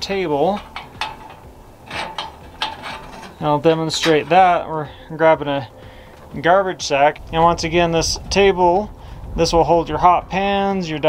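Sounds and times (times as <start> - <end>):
metal frame clicks and taps: 0.5 - 3.4.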